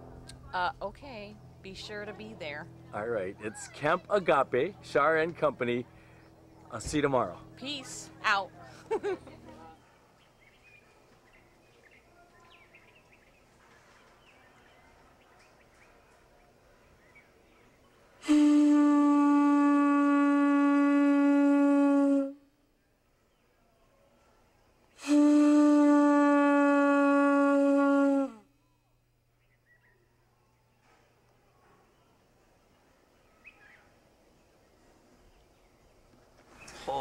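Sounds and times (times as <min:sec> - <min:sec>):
faint outdoor background: 0:00.0 - 0:37.0
conch shell trumpet blowing: 0:18.2 - 0:22.5, 0:25.0 - 0:28.5.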